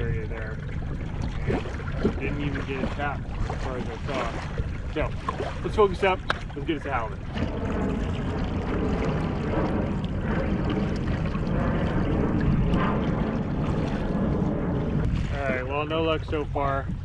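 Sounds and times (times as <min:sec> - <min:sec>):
water splashing against kayak: 0:00.0 - 0:17.0
wind on microphone: 0:00.0 - 0:17.0.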